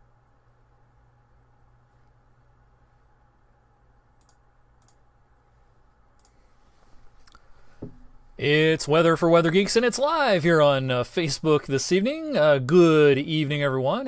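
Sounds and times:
low hum: 0.0s - 14.0s
faint sharp clicks: 4.2s - 5.0s
loud knock: 7.8s - 8.1s.

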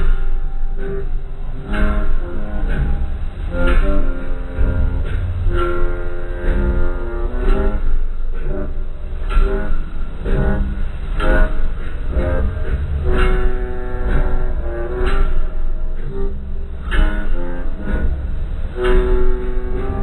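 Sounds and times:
loud music with heavy bass: 0.0s - 20.0s.

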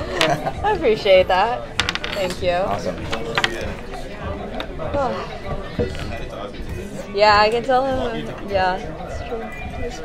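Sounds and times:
wooden chess pieces clacking: 0.0s - 0.5s, 1.7s - 4.8s.

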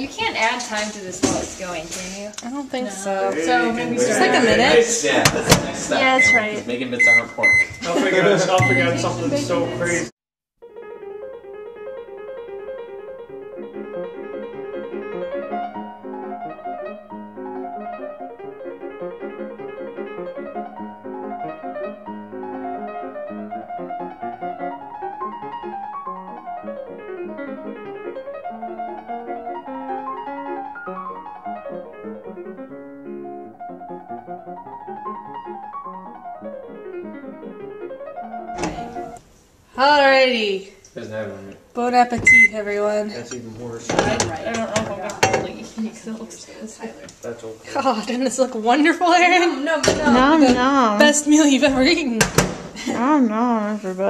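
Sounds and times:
piano music with quick runs: 3.4s - 39.2s.

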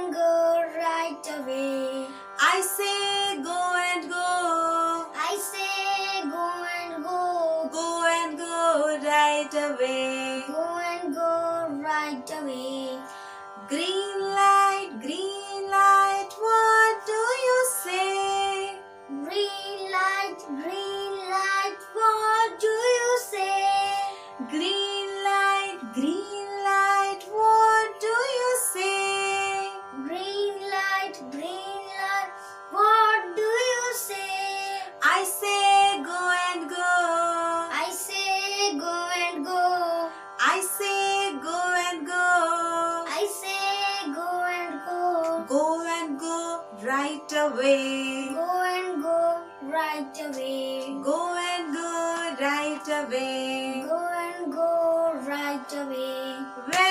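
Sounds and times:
woman and boy singing: 0.0s - 56.9s.

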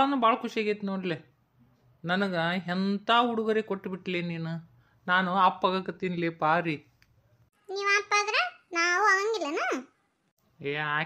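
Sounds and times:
high-pitched cartoon voice: 7.7s - 10.0s.

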